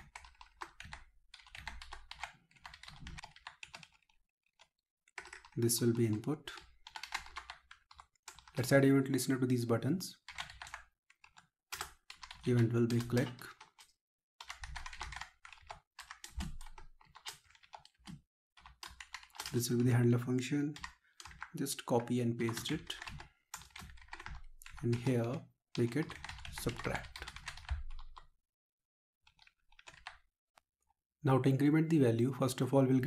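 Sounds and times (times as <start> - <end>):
rapid keyboard typing: 0.0 - 9.5, 10.1 - 28.3, 29.2 - 30.3
keyboard typing clicks: 22.4 - 25.1, 25.8 - 28.3.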